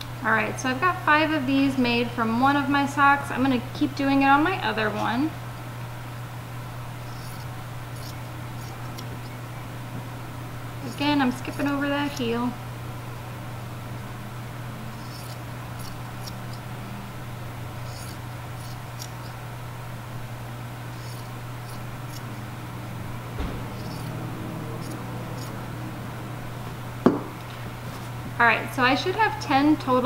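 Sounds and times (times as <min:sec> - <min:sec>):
steady low hum: 0:00.0 - 0:30.0
scissors snipping fabric: 0:07.1 - 0:09.1, 0:10.9 - 0:12.3, 0:14.9 - 0:16.6, 0:17.8 - 0:19.4, 0:21.0 - 0:22.3, 0:23.7 - 0:25.6
sharp knock: 0:23.3 - 0:25.6
soft thump: 0:23.3 - 0:27.6.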